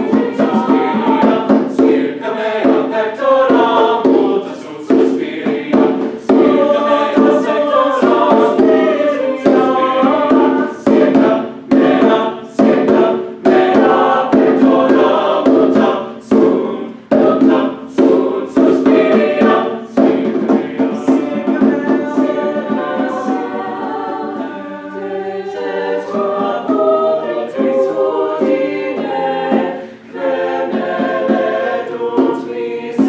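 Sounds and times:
hand drum strokes: 0.0 - 33.0
mixed choir singing: 0.0 - 33.0.

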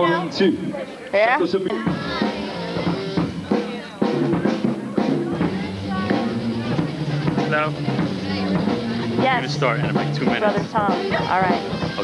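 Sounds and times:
live band music: 0.0 - 12.0
people talking: 0.0 - 12.0
drum kit beat: 1.7 - 12.0.

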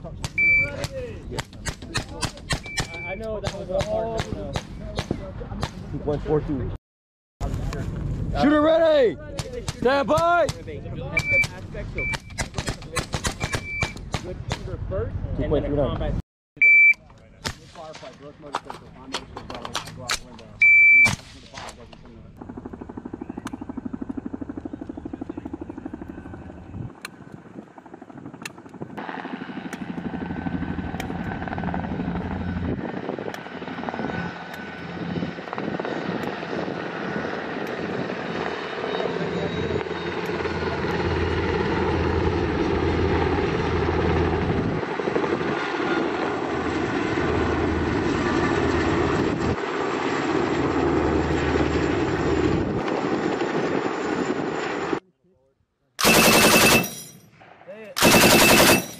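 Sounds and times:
helicopter rotors thrumming: 0.0 - 6.4, 7.4 - 16.1, 21.8 - 55.0, 56.0 - 57.4, 58.0 - 58.9
loud beep: 0.4 - 0.8, 2.6 - 3.2, 11.2 - 12.4, 13.4 - 14.0, 16.6 - 17.0, 20.6 - 21.2, 56.0 - 57.1, 58.0 - 58.9.

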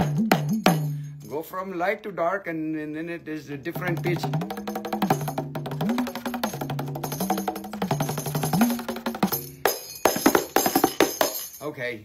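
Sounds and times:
frame tambourine finger strokes: 4.4 - 11.6.

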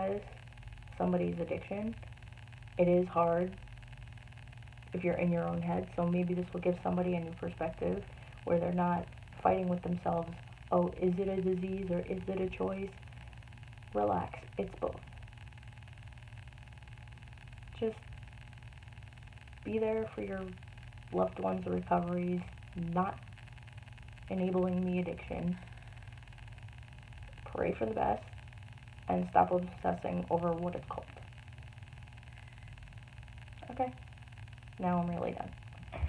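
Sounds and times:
faint hiss: 0.0 - 36.0
faint low hum: 0.0 - 36.0.

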